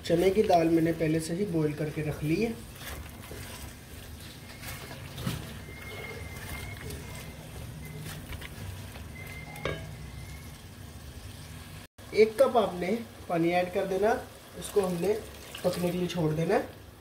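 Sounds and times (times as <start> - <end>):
food sizzling in a pot: 0.0 - 16.8
spatula scraping and tapping pot: 2.6 - 10.0.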